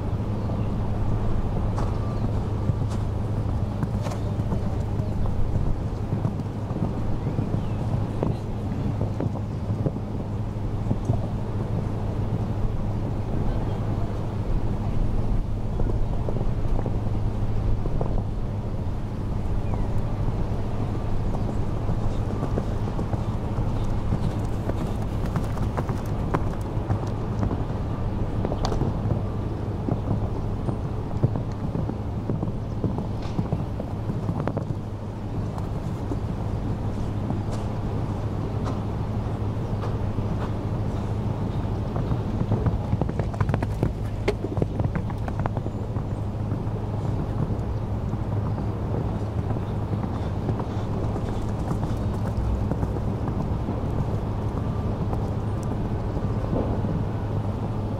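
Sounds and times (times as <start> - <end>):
steady low rumble: 0.0 - 57.9
wind on microphone: 0.0 - 57.9
horse hoofbeats on sand: 1.7 - 12.4, 20.7 - 29.2, 29.9 - 38.9, 39.8 - 57.0.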